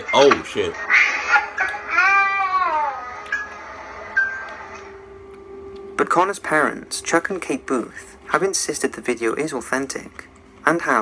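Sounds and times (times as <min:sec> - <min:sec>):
small child crying: 0:01.0 - 0:03.2.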